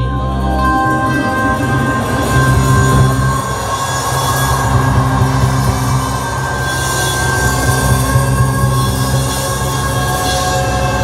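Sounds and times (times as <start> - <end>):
heavy bass: 0.0 - 11.0
live band playing: 0.0 - 11.0.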